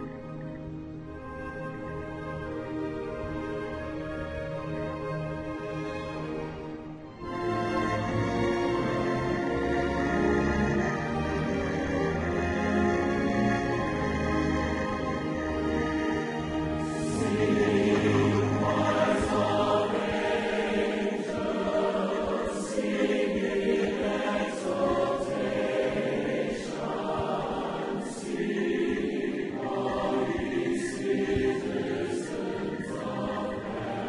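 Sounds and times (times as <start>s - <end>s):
choir singing long held notes: 0.0s - 34.0s.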